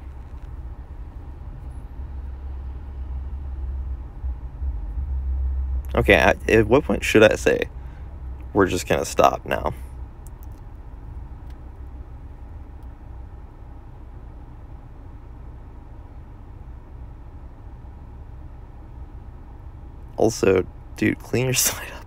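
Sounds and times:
low background rumble: 0.0 - 22.0
faint hiss: 20.2 - 22.0.

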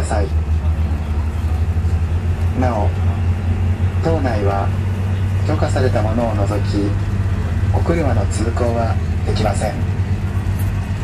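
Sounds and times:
ferry engine droning: 0.0 - 11.0
voices: 0.0 - 11.0.

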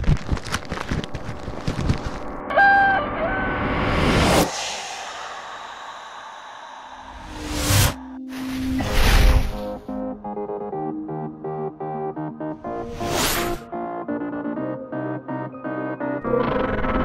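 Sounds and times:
chicken call sound effect: 2.5 - 4.0
rising whoosh: 3.4 - 9.8
hiss: 4.4 - 8.6.

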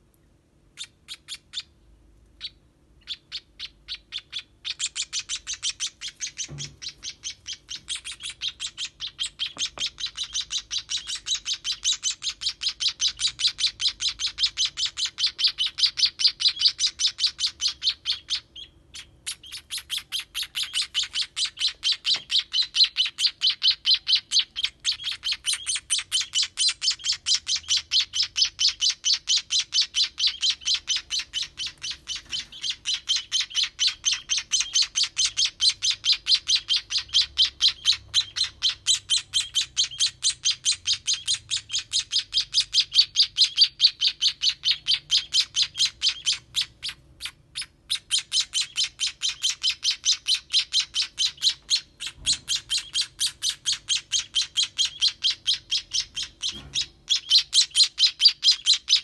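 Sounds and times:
baby sparrows cheeping: 0.7 - 59.0.

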